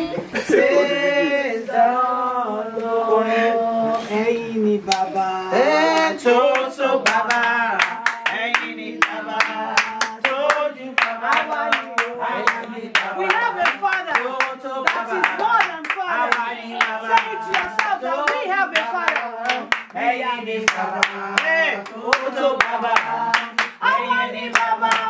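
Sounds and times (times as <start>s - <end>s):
group singing a chorus: 0.4s - 25.0s
rhythmic hand clapping: 4.9s - 25.0s.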